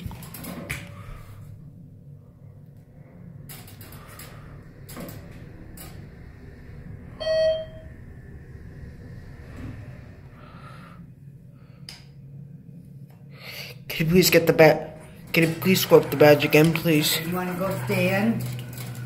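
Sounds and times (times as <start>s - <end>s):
elevator low hum: 0.0s - 19.0s
short electronic beep: 7.2s - 7.8s.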